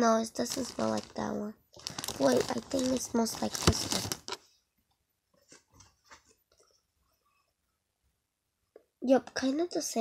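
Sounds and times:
foam toy handling: 0:00.4 - 0:01.2, 0:01.8 - 0:04.4.

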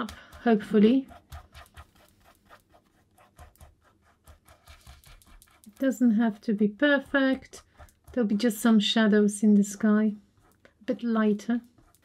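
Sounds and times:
scratchy paint strokes on canvas: 0:00.0 - 0:12.0.

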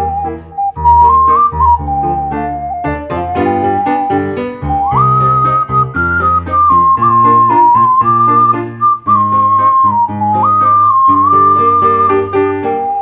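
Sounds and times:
sustained bass notes and chords: 0:00.0 - 0:06.2
ocarina melody: 0:00.0 - 0:13.0.

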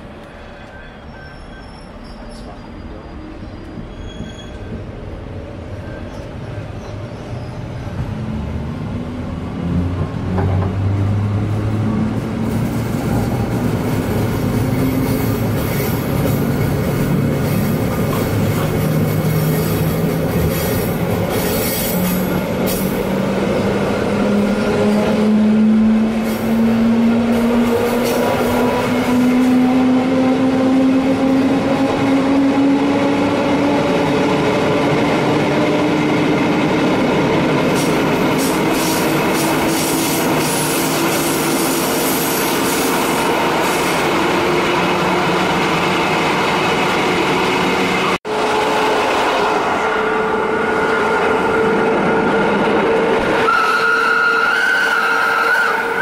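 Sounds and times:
wheels rumbling on rail: 0:00.0 - 0:56.0.

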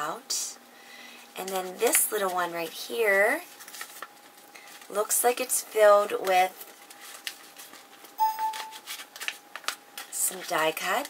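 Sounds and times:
paper envelope rustling: 0:03.5 - 0:05.0, 0:06.6 - 0:10.6.

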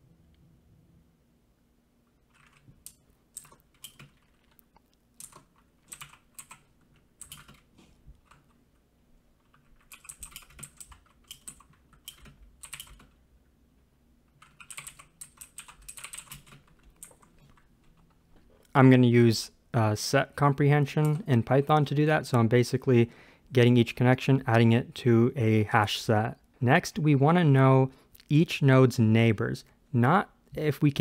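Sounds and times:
computer keyboard typing: 0:02.3 - 0:08.6, 0:09.4 - 0:13.2, 0:14.3 - 0:18.2.

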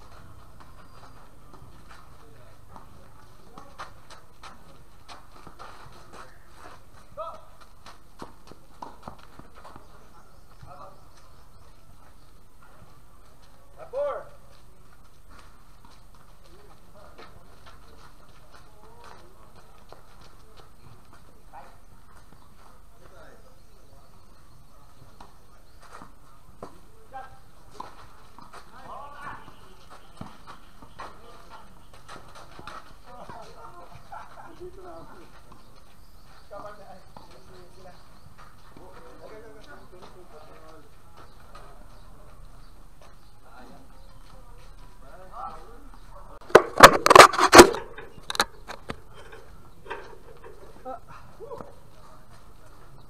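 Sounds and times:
faint voices of players: 0:00.0 - 0:07.8, 0:08.5 - 0:53.0
ball bouncing on court: 0:07.6 - 0:10.8
racket striking tennis ball: 0:46.5 - 0:48.0.

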